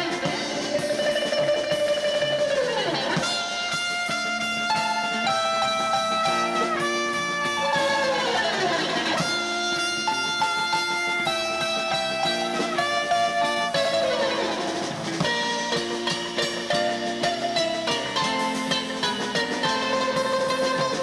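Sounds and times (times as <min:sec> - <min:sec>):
drum kit: 0:00.0 - 0:21.0
plucked strings: 0:00.0 - 0:21.0.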